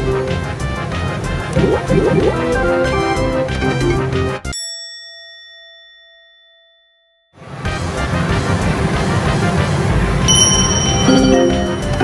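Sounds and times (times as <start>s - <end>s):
bell-like ding: 4.5s - 7.4s, 10.3s - 12.0s.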